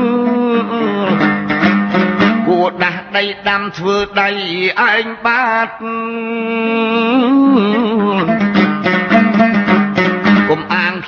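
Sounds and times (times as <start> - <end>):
long-necked lute playing: 0.0 - 3.2, 7.2 - 11.0
man singing: 0.0 - 11.0.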